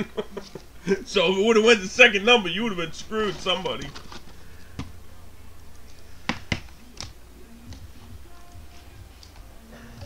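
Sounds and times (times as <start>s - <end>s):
steady low hum: 0.0s - 10.0s
cards and boxes tapping on table: 6.2s - 7.1s.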